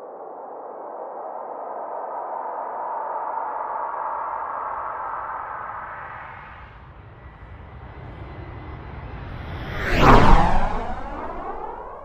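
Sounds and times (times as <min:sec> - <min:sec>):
deep rumble: 0:06.8 - 0:12.0
hissing whoosh: 0:09.6 - 0:12.0.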